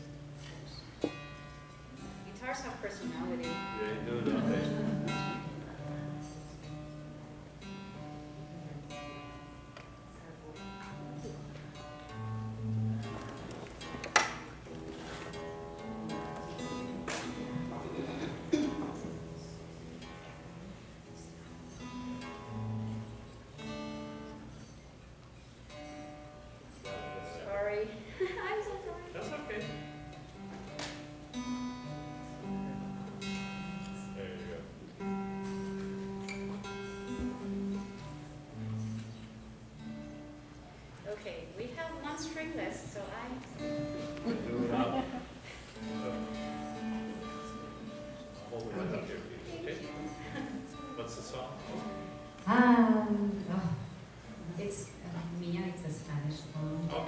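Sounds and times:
acoustic guitar strings plucked: 0.0s - 27.6s, 28.6s - 40.6s, 43.6s - 54.2s.

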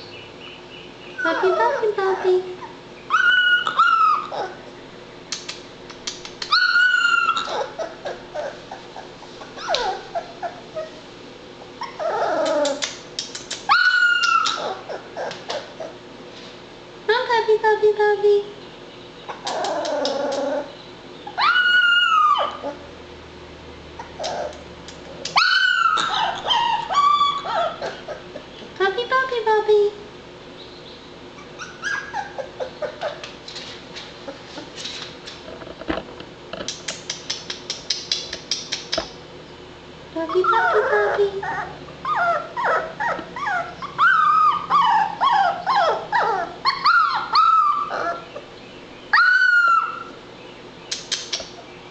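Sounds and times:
puppy whimpering and crying: 1.2s - 4.6s, 6.5s - 11.0s, 11.8s - 12.8s, 13.7s - 16.0s, 19.3s - 22.9s, 24.0s - 24.6s, 25.4s - 28.4s, 31.4s - 33.2s, 40.2s - 48.4s, 49.1s - 50.2s.

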